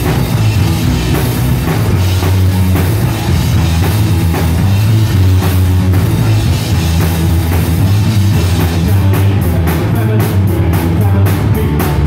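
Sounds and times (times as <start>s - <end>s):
drum kit beating rhythm: 0.0s - 12.0s
electric guitars holding chords: 0.0s - 12.0s.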